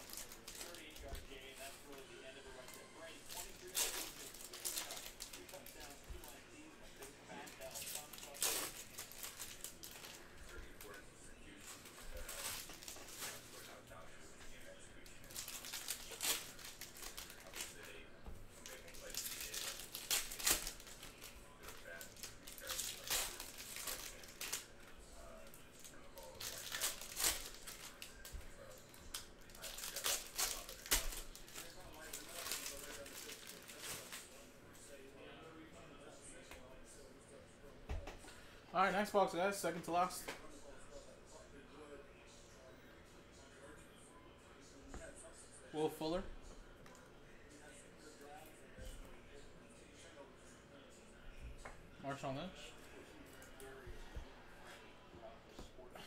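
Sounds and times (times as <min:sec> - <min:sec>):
foil wrappers crinkling and tearing: 0:00.0 - 0:02.0, 0:02.6 - 0:06.4, 0:07.0 - 0:13.8, 0:14.7 - 0:18.0, 0:18.6 - 0:34.4.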